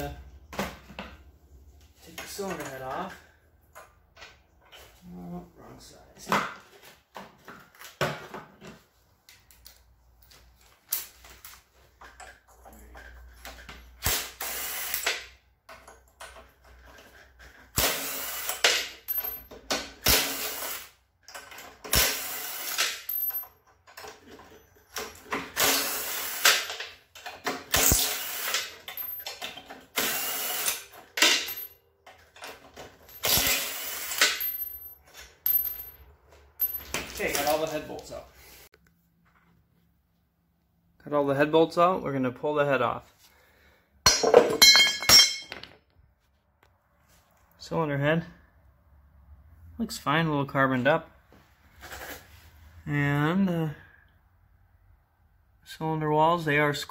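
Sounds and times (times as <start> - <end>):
impact driver bursts: 14.0 - 15.2, 21.9 - 23.0, 25.5 - 26.7, 27.7 - 28.7, 33.2 - 34.4.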